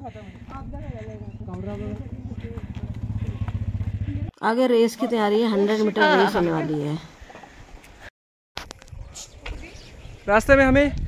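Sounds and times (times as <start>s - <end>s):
motor scooter engine passing: 0.0s - 4.3s.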